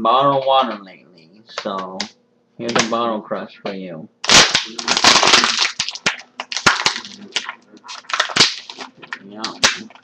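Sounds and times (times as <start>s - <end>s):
plastic bottle crackling and crunching: 4.2s - 10.0s.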